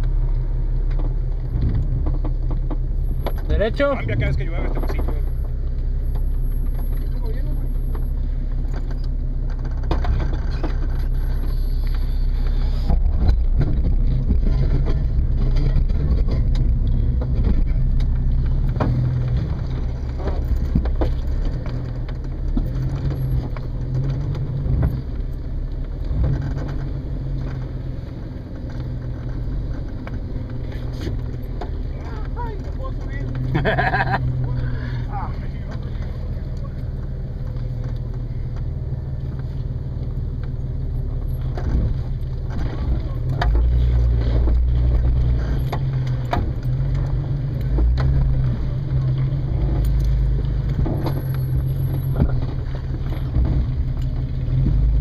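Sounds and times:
engine running at low speed: 0:00.0 - 0:55.0
rocks knocking under vehicle: 0:12.9 - 0:34.7.

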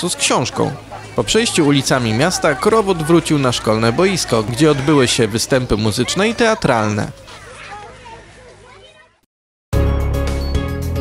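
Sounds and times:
children chattering: 0:00.0 - 0:09.3.

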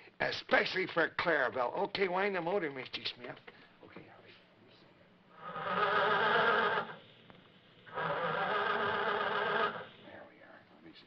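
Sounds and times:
hand-cranked machine buzzing whir: 0:05.4 - 0:07.0, 0:07.8 - 0:09.9.

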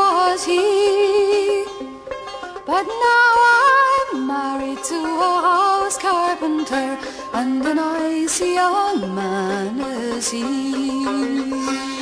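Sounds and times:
plucked banjo: 0:00.0 - 0:12.0
sitar melody with pitch bends: 0:00.0 - 0:12.0.

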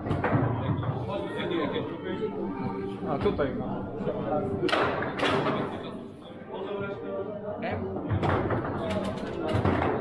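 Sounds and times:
chatter of voices in a hall: 0:00.0 - 0:10.0.

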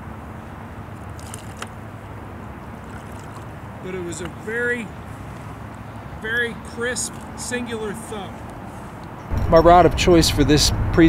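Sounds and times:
low outdoor river noise: 0:00.0 - 0:11.0
fish splashing at surface: 0:01.0 - 0:01.8, 0:02.8 - 0:03.6.

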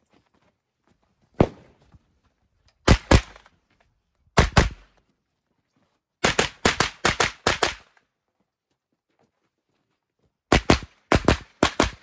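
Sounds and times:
rapid gunfire: 0:06.2 - 0:07.8, 0:10.5 - 0:12.0.

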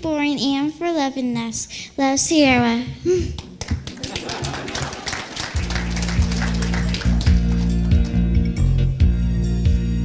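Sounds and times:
audience clapping: 0:03.4 - 0:08.7
music with low bass notes: 0:05.8 - 0:10.0.

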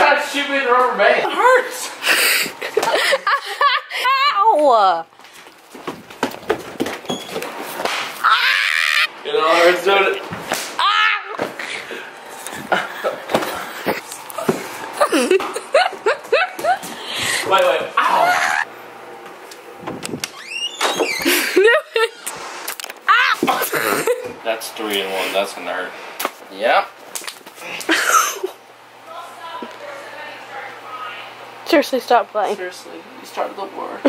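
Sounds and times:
people scuffling knocks: 0:05.2 - 0:08.2, 0:12.5 - 0:15.6
high-pitched vocal squeal: 0:08.2 - 0:09.1
person squealing and laughing: 0:08.2 - 0:09.1, 0:15.0 - 0:16.8, 0:18.0 - 0:18.7, 0:21.0 - 0:22.3, 0:23.1 - 0:24.3.

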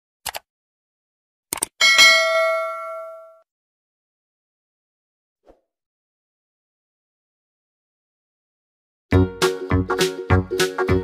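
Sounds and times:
notification bell ding: 0:01.8 - 0:03.4.

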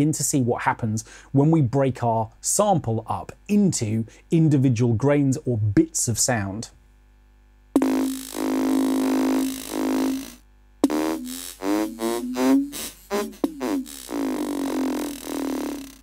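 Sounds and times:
held synth tone: 0:07.8 - 0:15.9.

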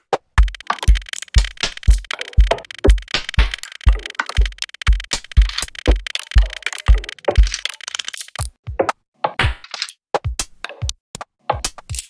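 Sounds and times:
glitchy electronic clicks: 0:00.4 - 0:08.6
heavy kick drum thumping: 0:03.9 - 0:07.6.

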